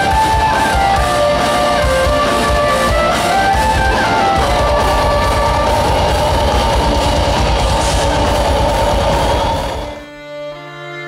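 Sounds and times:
metal band playing live: 0.0s - 10.3s.

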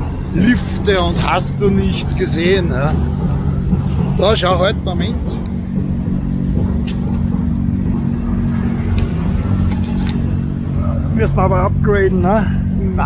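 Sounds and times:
car engines humming: 0.0s - 13.0s.

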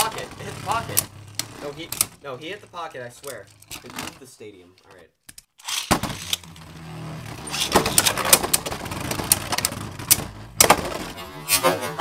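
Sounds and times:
spinning tops whirring and clacking: 7.4s - 11.2s.

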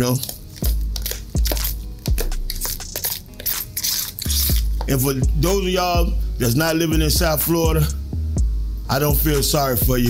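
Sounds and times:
spoon mashing mixture in plastic bowl: 0.0s - 5.0s
deep bass background music: 0.0s - 10.0s.

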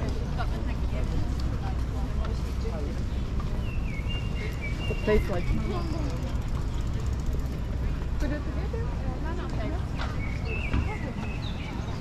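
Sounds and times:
indistinct chatter of passers-by: 0.0s - 12.0s
low city rumble: 0.0s - 12.0s.

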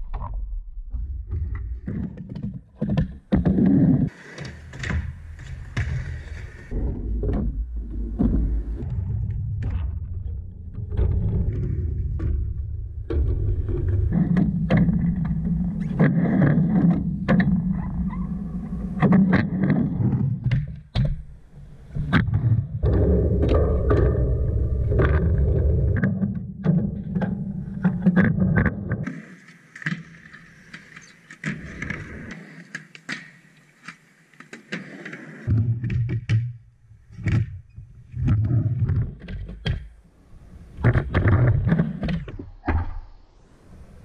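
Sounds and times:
skateboard wheels rumbling on ramp: 1.1s - 29.4s, 34.6s - 42.4s.

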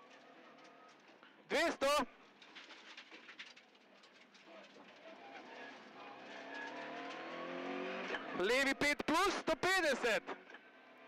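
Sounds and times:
car engine revving under acceleration: 6.0s - 8.4s.

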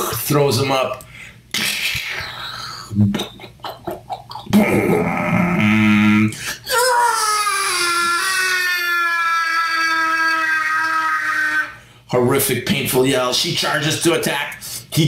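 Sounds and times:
man growling like a dinosaur: 4.4s - 6.4s
man's high wailing cry: 4.6s - 11.8s.

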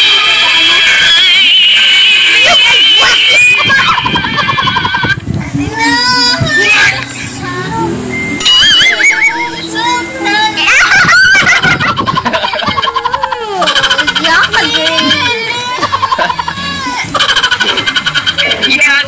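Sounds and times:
wavering sing-song voice: 6.6s - 11.1s
rapid buzzing rattle: 8.4s - 19.0s.

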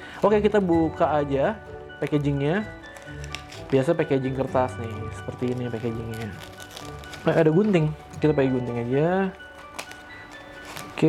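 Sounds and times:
soft background music: 0.0s - 11.0s
scissors cutting paper: 2.7s - 7.7s, 9.4s - 11.0s.

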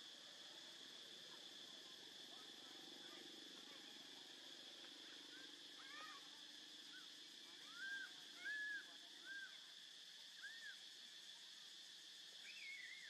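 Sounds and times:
high insect drone: 0.0s - 13.0s.

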